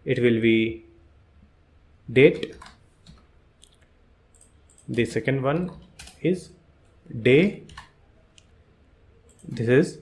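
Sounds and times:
computer keyboard and mouse clicks: 2.4 - 6.2, 7.6 - 8.5.

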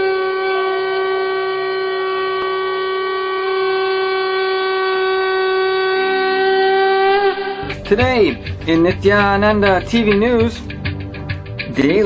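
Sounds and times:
conch shell blown: 0.0 - 8.5.

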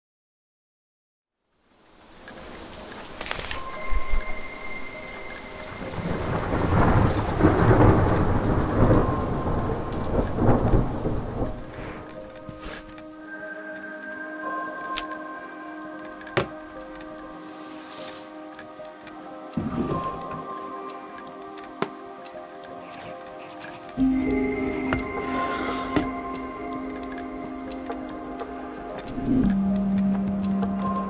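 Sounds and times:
steady rain: 1.4 - 31.0
rolling thunder: 5.7 - 12.6.

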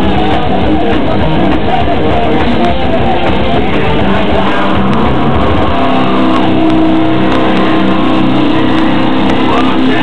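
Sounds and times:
distorted electric guitar chord: 0.0 - 10.0
drums: 0.0 - 10.0
live metal band: 0.0 - 10.0.

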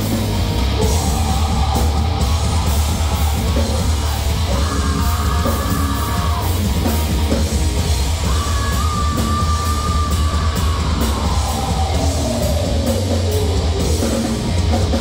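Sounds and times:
heavy metal band playing: 0.0 - 15.0.

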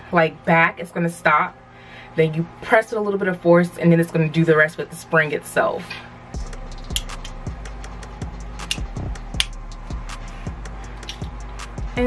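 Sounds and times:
music with steady beat: 6.3 - 12.0.

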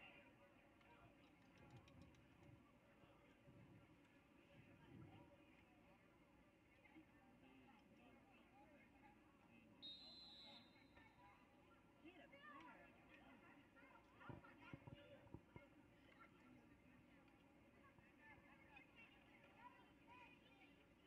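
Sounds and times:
high whistle: 9.8 - 10.8.

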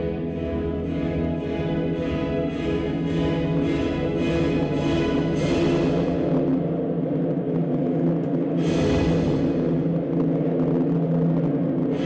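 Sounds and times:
orchestral ballet music: 0.0 - 7.0.

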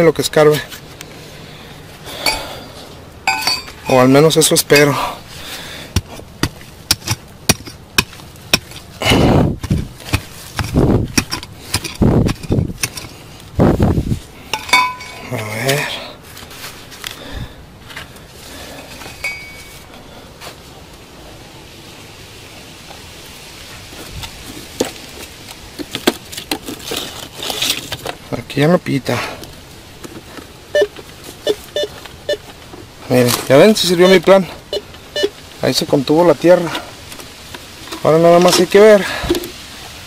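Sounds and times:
tool scraping soil: 4.8 - 14.3, 26.4 - 28.1
digging tool knocking on rock: 6.0 - 8.9, 9.6 - 13.1.

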